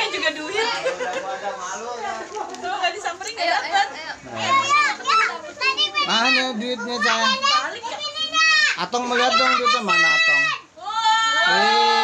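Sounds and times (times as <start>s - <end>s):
children talking and calling: 0.0s - 12.0s
loud high child's voice: 4.5s - 10.6s.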